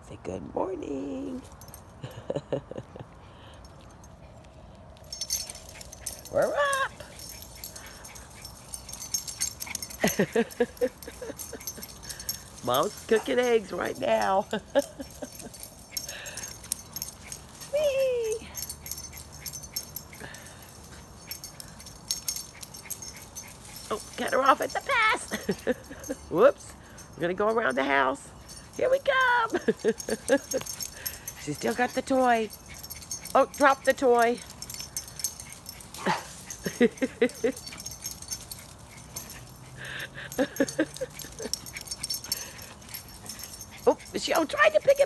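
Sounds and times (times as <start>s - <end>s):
collar tags jingling: 0.8s - 45.0s
small dogs playing: 1.4s - 45.0s
woman laughing: 2.0s - 3.2s, 9.8s - 12.4s, 13.0s - 16.6s, 24.8s - 26.4s, 29.1s - 31.8s, 36.0s - 37.8s, 39.8s - 41.6s.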